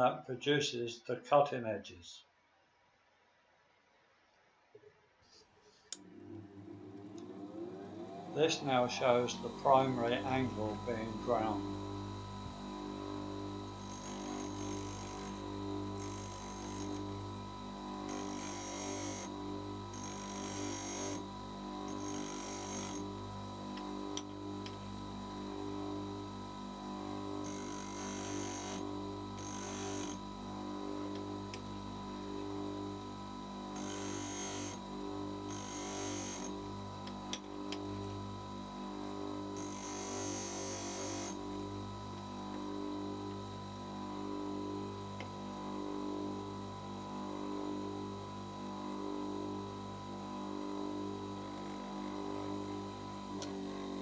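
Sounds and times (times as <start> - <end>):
bench grinder humming: 5.8 - 48.8, 51.4 - 54.0.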